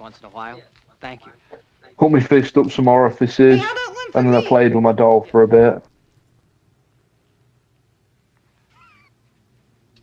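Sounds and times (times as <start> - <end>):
faint wavering animal cry: 8.6 - 9.2.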